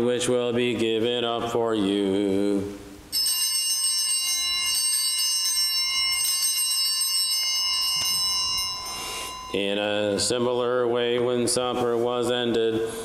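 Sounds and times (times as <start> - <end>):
altar bells ringing: 3.1 - 11.4.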